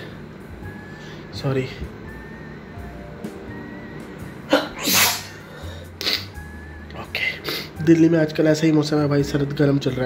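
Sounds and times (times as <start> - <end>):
man sneezing: 4.5 - 5.4.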